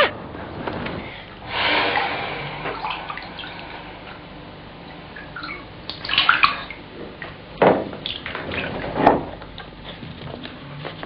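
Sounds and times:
bathwater splashing: 0:01.4 - 0:09.8.

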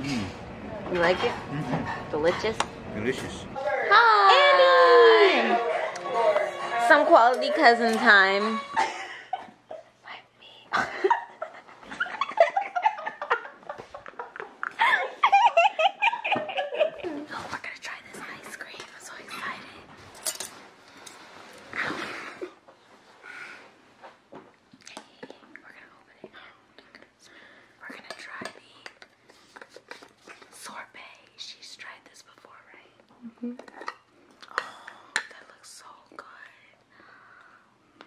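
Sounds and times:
woman whispering: 0:10.0 - 0:10.7, 0:17.1 - 0:19.9, 0:24.9 - 0:26.7, 0:30.6 - 0:33.0, 0:35.4 - 0:36.8.

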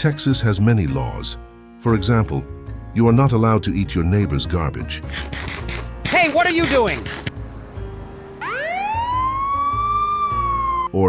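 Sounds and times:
siren wail: 0:08.3 - 0:11.0.

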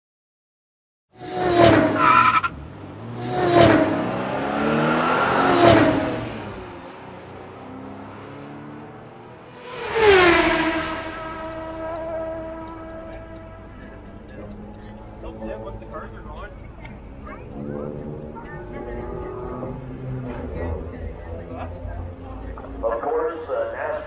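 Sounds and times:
race cars passing by: 0:01.2 - 0:24.0.

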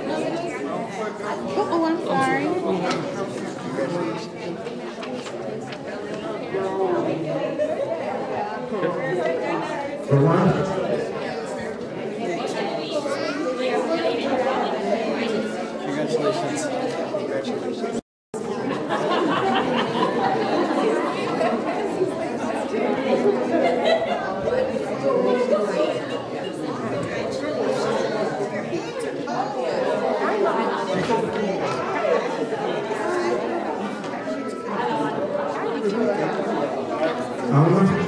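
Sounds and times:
crowd chatter in a hall: 0:00.0 - 0:38.0.

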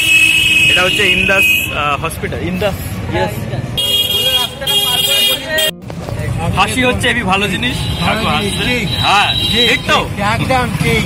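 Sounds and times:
vehicle horn blasts: 0:00.0 - 0:01.8, 0:03.8 - 0:05.8
voices talking: 0:00.6 - 0:11.0.

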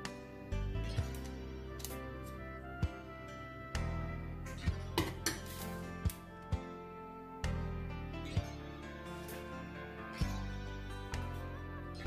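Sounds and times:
background music: 0:00.0 - 0:12.0
spoon scraping: 0:05.0 - 0:05.8.

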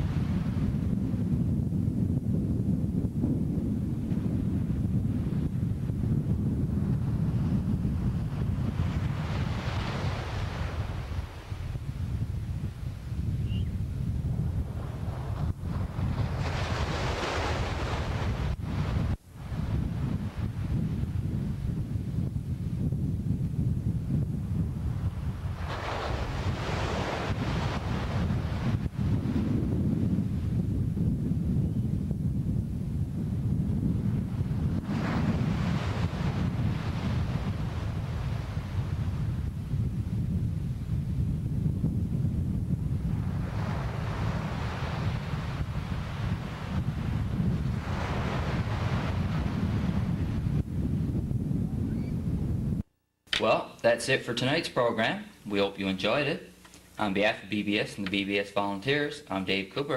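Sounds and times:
wind rumble on microphone: 0:00.0 - 0:52.9
waves washing on beach: 0:07.1 - 0:13.2, 0:14.6 - 0:21.7, 0:24.8 - 0:29.6, 0:34.0 - 0:39.8, 0:42.9 - 0:50.5.

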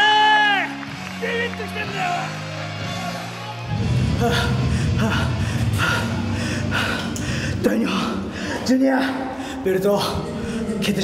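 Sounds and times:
man panting heavily: 0:04.1 - 0:10.8.

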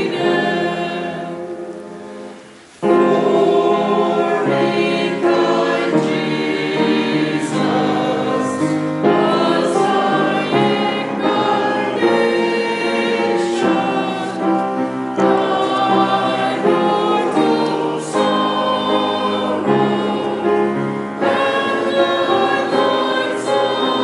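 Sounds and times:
church choir singing chords: 0:00.0 - 0:24.0.

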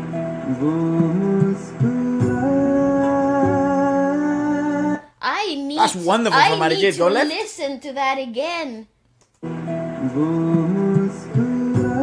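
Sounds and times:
man singing long notes: 0:00.5 - 0:05.1.

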